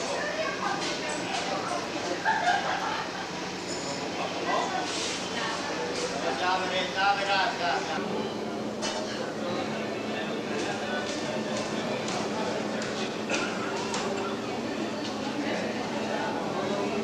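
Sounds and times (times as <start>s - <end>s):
many voices chattering: 0.0s - 17.0s.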